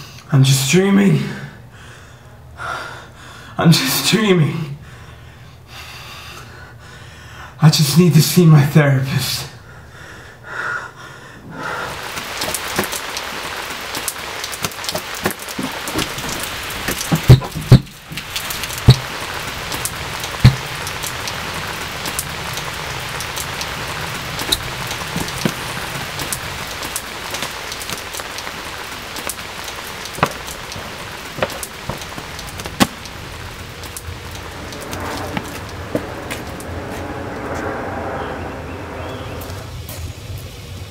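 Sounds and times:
steady rain: 0:11.4 - 0:40.9.

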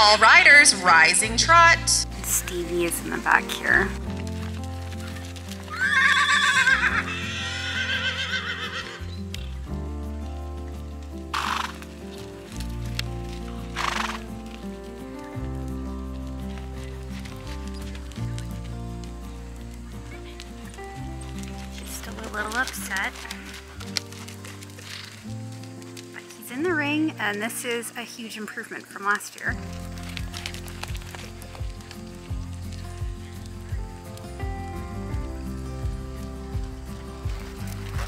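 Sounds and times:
background music: 0:00.0 - 0:38.0
horse whinnying: 0:05.1 - 0:09.2, 0:11.3 - 0:12.0, 0:13.7 - 0:14.3.

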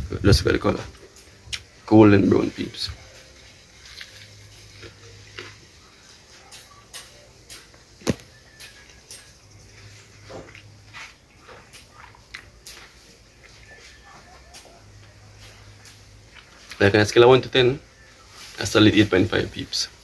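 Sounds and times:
person chewing fried fish: 0:03.7 - 0:06.7, 0:10.2 - 0:13.7, 0:16.2 - 0:16.8.

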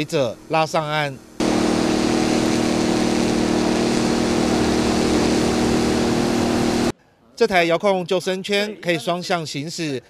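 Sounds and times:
water rushing: 0:00.0 - 0:06.9
motor humming: 0:01.2 - 0:06.9.

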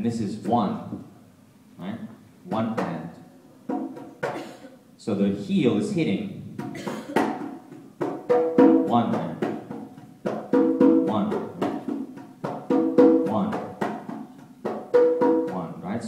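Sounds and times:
conga drums played by hand: 0:02.5 - 0:04.7, 0:06.6 - 0:15.8.

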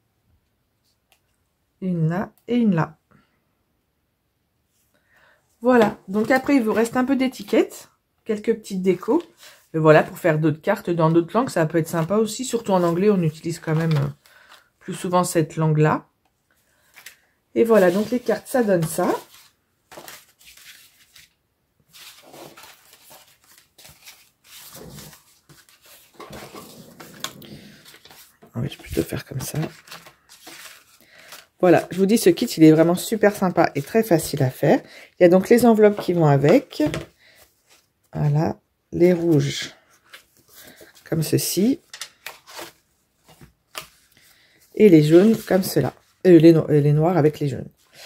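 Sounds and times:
cardstock rustling: 0:11.8 - 0:14.7, 0:16.9 - 0:34.2, 0:44.8 - 0:46.1.

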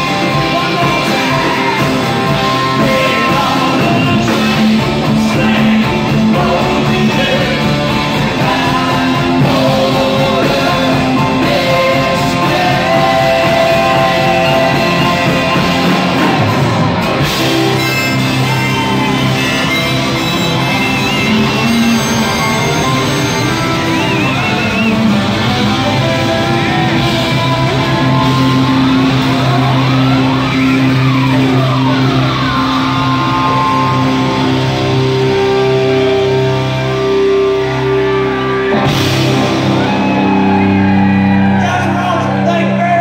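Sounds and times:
sliding guitar notes: 0:00.0 - 0:41.7
bass guitar: 0:00.0 - 0:43.0
electric guitar: 0:00.0 - 0:43.0
live rock band playing: 0:00.0 - 0:43.0.

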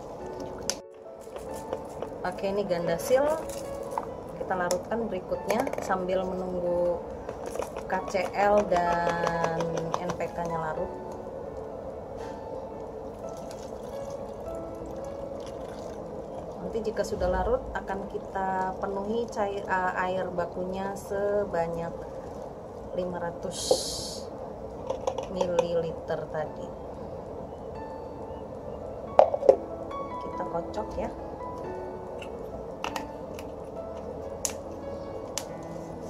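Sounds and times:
background music with held notes: 0:00.0 - 0:36.0
water pouring through funnel: 0:13.4 - 0:16.6.

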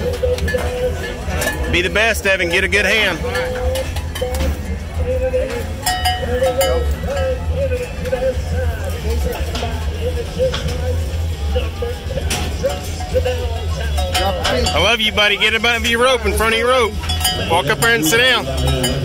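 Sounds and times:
metallic clinks: 0:05.5 - 0:07.7, 0:16.5 - 0:19.0.

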